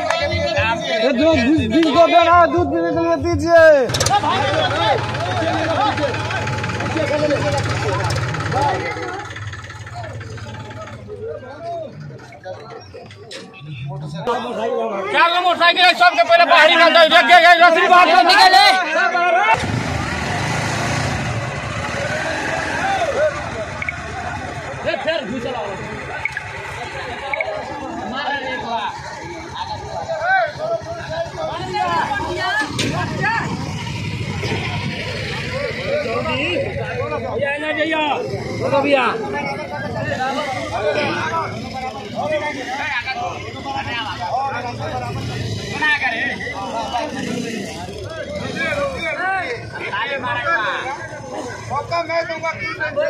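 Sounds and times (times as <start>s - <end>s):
man's voice: 0.0s - 5.0s
motorcycle engines running: 0.0s - 18.3s, 19.5s - 53.0s
crowd noise: 0.0s - 53.0s.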